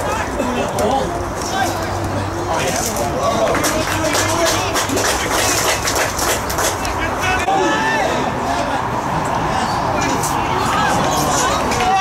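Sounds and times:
footballers shouting: 0.0s - 12.0s.

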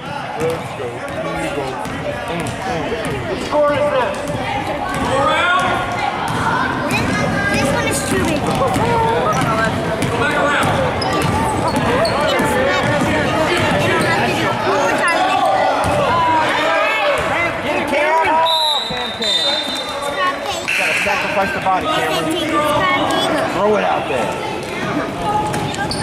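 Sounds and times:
shouts and chatter echoing: 0.0s - 26.0s
steady high whistle: 18.4s - 20.0s.

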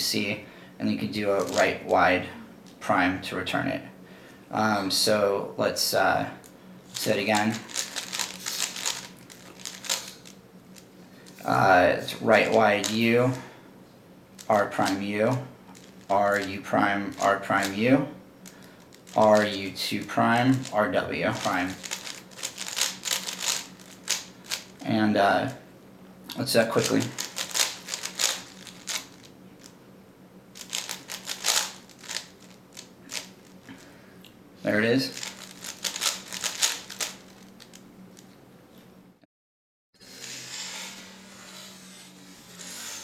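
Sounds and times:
puzzle cube clicks: 7.4s - 10.4s, 21.4s - 24.7s, 26.8s - 29.7s, 30.6s - 33.3s, 35.1s - 37.8s.

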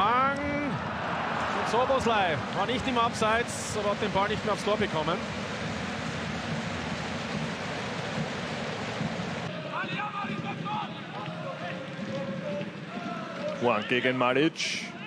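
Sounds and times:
stadium crowd noise: 0.0s - 15.0s.

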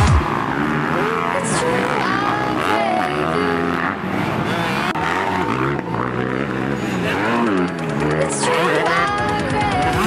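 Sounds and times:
dirt bike engines revving: 0.0s - 10.0s.

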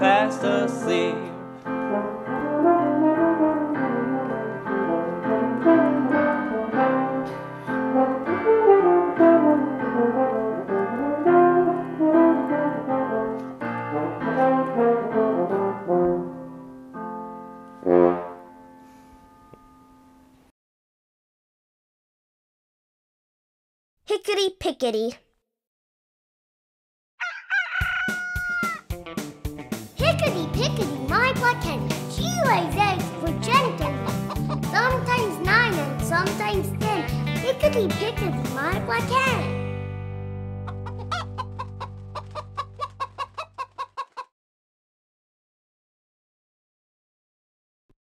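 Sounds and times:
french horn melody: 0.0s - 16.7s, 17.7s - 18.5s
electronic keyboard piano chords: 0.0s - 20.0s, 30.0s - 42.1s
rooster crowing: 27.2s - 28.9s
children's song with a beat: 28.6s - 39.6s.

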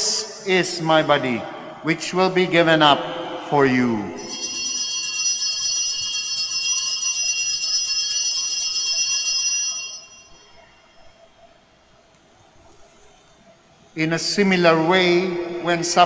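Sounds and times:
altar bells jingling: 4.2s - 11.6s.

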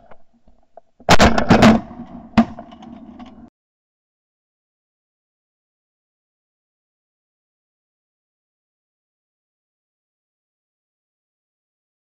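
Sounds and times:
shotgun shots: 1.1s - 2.0s.

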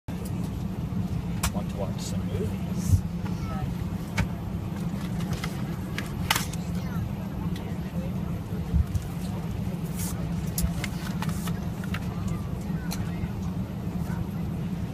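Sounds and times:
airliner cabin drone: 0.1s - 14.9s.

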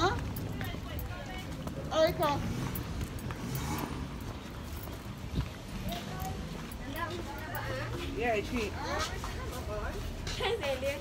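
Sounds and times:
footsteps on a street: 0.0s - 11.0s.

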